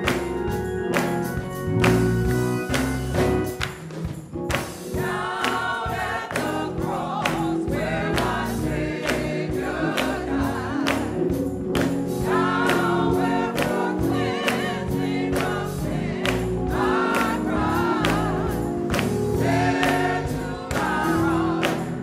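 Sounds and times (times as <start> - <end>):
hand claps: 0.0 - 7.5, 8.2 - 22.0
instrumental backing: 0.0 - 22.0
gospel choir singing: 4.8 - 22.0.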